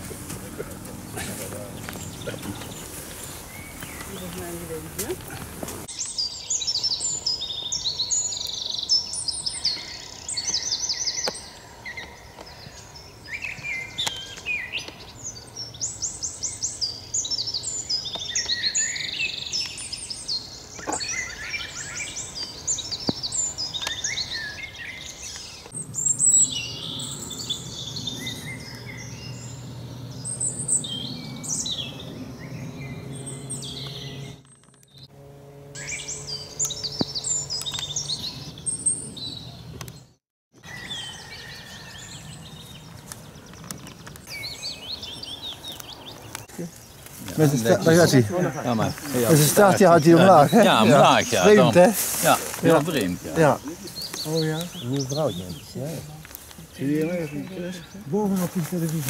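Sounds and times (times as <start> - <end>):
songbirds singing: 0.0 - 59.0.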